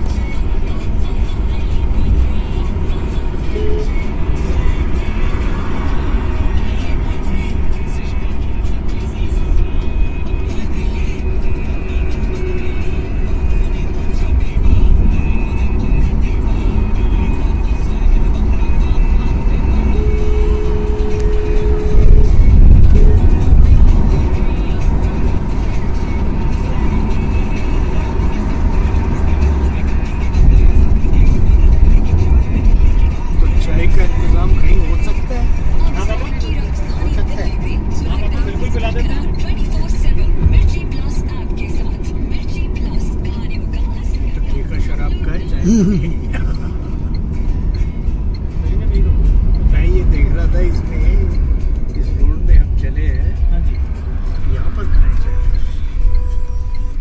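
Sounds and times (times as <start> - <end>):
music playing: 0.0 - 57.0
vehicle road and engine rumble: 0.0 - 57.0
two-note tone: 3.5 - 4.1.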